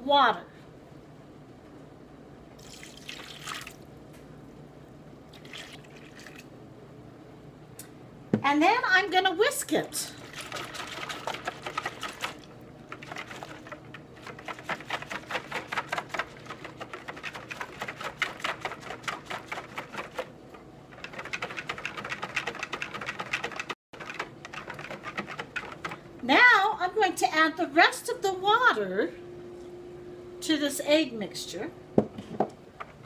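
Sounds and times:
whisk clicking against plastic bowl: 20.9s - 26.0s.

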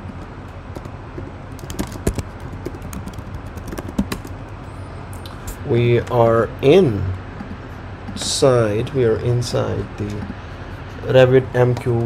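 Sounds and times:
computer keyboard typing: 0.0s - 4.6s
steady low hum: 0.0s - 12.0s.

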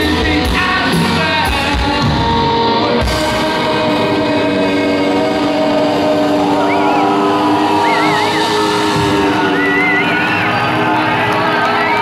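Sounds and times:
rock band holding a sustained chord: 0.0s - 12.0s
crowd whistling: 2.0s - 12.0s.

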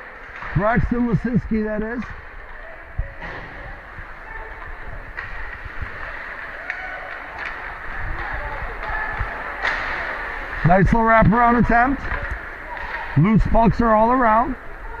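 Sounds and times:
stick and puck clacks: 4.4s - 10.5s, 11.2s - 13.8s.

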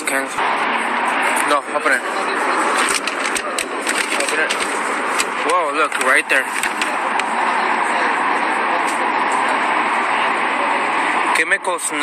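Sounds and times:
loud steady rushing noise: 0.0s - 12.0s.

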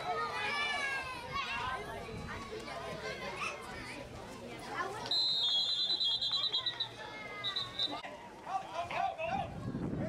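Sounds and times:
children and spectators shouting: 0.0s - 2.0s.

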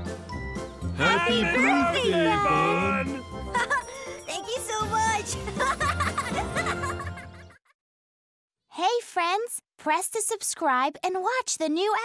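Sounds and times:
cartoon music: 1.0s - 3.8s
characters giggling: 1.0s - 4.0s, 5.5s - 7.6s.

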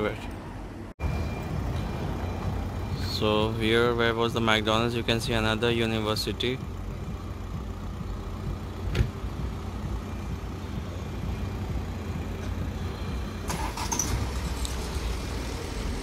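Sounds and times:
low rumble of cars: 0.0s - 16.0s.

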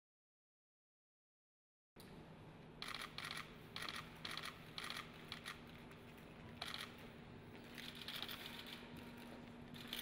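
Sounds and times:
faint steady hum: 2.0s - 10.0s.

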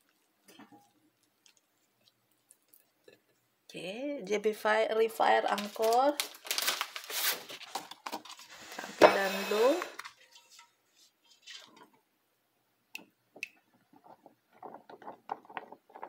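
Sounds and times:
person speaking: 3.7s - 6.3s, 8.8s - 10.0s.

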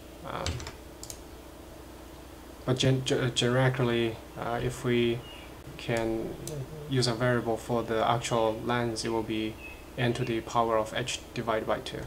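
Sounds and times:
faint computer clicks: 0.4s - 1.2s.

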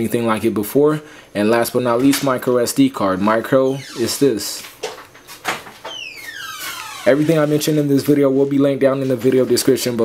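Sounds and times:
swoosh falling in pitch: 6.0s - 7.7s.

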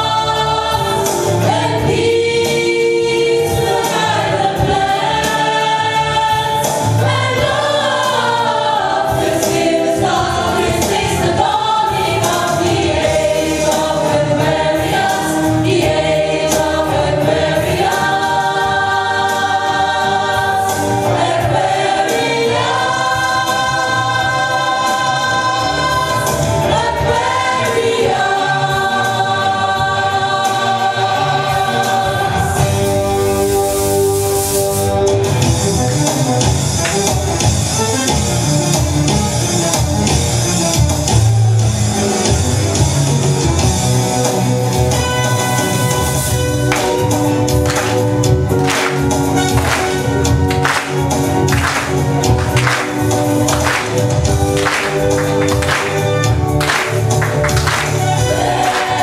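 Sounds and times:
men and women singing in chorus: 0.0s - 32.8s, 46.7s - 59.0s
musical accompaniment: 0.0s - 59.0s.

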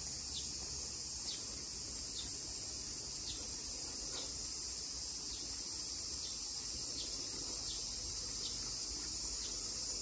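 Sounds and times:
insects trilling: 0.0s - 10.0s.

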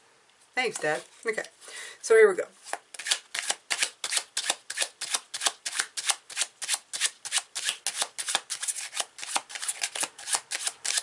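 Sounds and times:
cards being shuffled: 2.6s - 11.0s.

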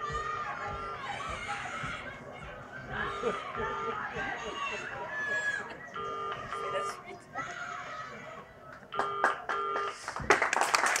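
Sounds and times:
audience applause: 9.0s - 11.0s.

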